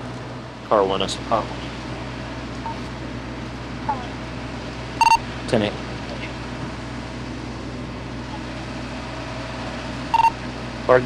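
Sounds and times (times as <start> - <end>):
low mechanical hum: 0.0 - 11.0
radio beep: 5.0 - 5.2, 10.2 - 10.4.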